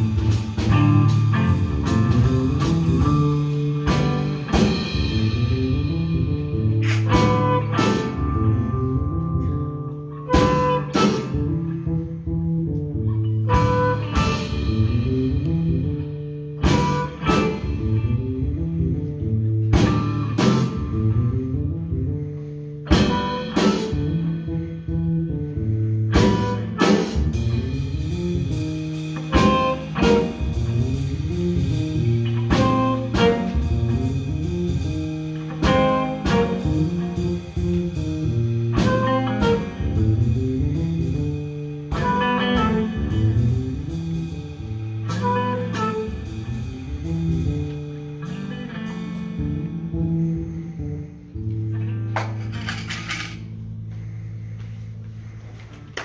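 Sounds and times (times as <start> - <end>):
drum and cymbal hits: 0.0 - 8.2, 19.8 - 21.0
bass guitar: 0.0 - 56.0
electric guitar: 0.0 - 56.0.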